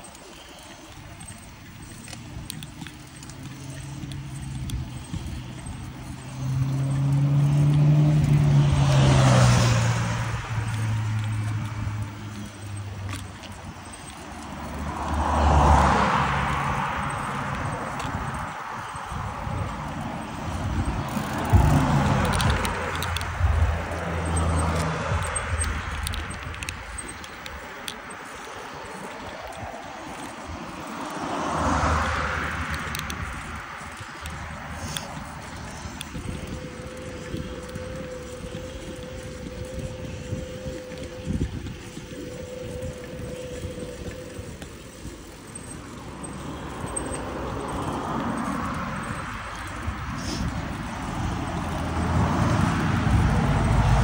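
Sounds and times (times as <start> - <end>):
bicycle tyre noise: 0.0 - 54.0
motor vehicles passing: 0.0 - 54.0.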